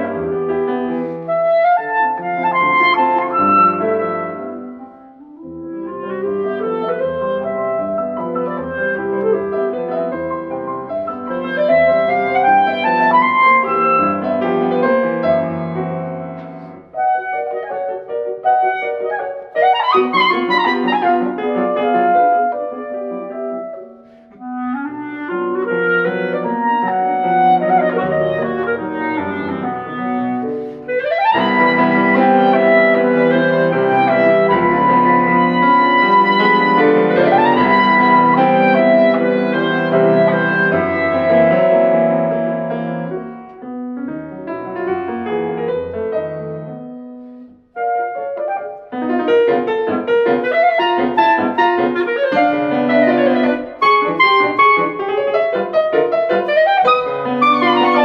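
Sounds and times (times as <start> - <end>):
clarinet: 0.0 - 58.0
grand piano: 0.0 - 58.0.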